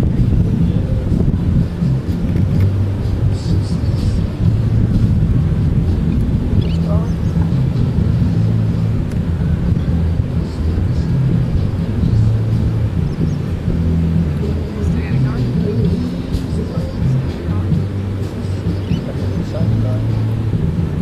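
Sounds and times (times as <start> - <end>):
people talking indistinctly: 0.0 - 21.0
surf rumbling: 0.0 - 21.0.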